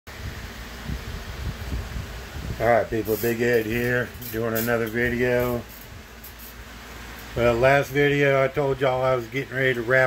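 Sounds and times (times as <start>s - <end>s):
low rumbling background noise: 0.1s - 10.0s.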